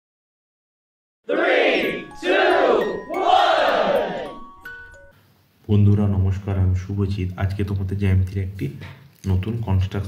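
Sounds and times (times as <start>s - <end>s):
group shout: 1.3s - 4.4s
jingle music: 1.3s - 5.2s.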